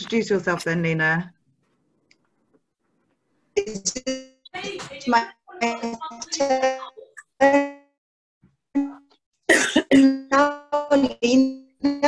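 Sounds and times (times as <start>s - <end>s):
woman speaking over video call: 0.0s - 1.4s, 4.5s - 7.2s.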